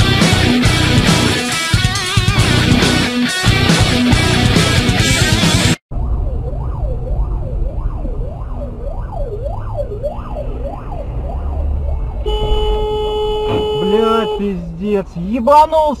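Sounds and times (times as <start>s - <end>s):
emergency vehicle siren: 5.9s - 14.2s
low vehicle rumble: 5.9s - 15.2s.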